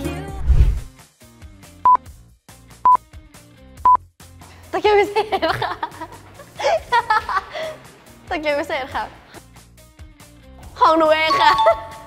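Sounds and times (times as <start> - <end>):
faint background music: 3.8 - 12.0.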